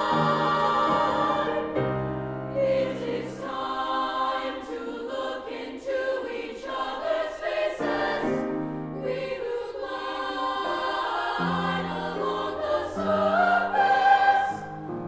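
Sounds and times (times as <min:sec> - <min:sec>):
piano accompaniment: 0:00.0 - 0:04.5
women's choir singing: 0:00.0 - 0:15.0.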